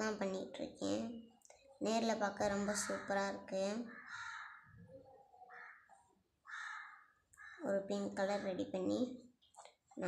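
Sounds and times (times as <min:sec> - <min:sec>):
bird calling harshly: 0:03.9 - 0:04.8.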